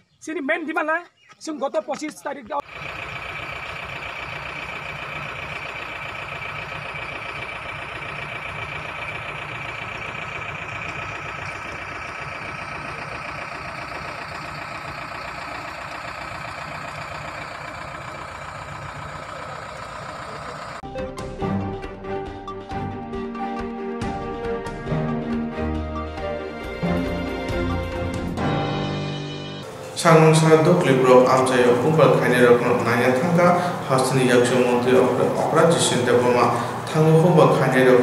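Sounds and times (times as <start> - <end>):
engine-like mechanical running: 2.6 - 20.8, 29.6 - 38.0.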